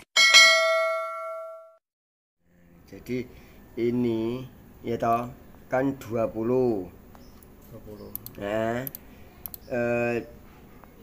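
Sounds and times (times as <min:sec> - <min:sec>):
bright bell ding: 0:00.2 - 0:01.8
mouse click: 0:08.1 - 0:09.7.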